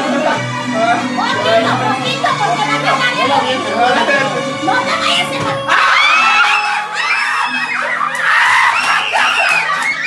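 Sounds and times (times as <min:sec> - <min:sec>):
men shouting excitedly: 0:05.6 - 0:09.7.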